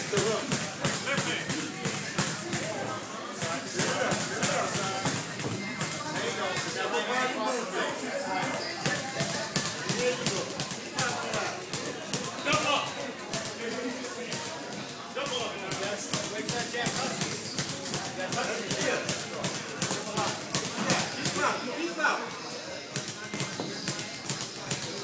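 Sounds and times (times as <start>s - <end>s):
chatter of voices: 0.0s - 25.0s.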